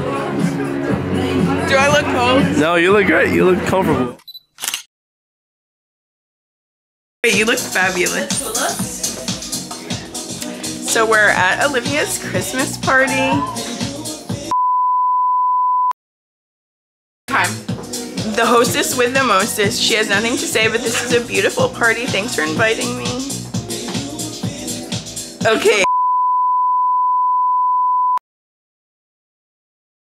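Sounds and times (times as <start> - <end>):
party music: 0.0 - 4.1, 7.2 - 14.6, 17.3 - 25.9
chatter: 18.3 - 23.4
electronic beep tone: 25.8 - 28.2.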